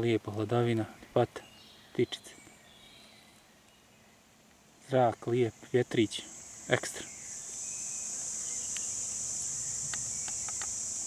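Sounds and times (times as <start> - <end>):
insect chorus buzzing: 0.7 - 11.0.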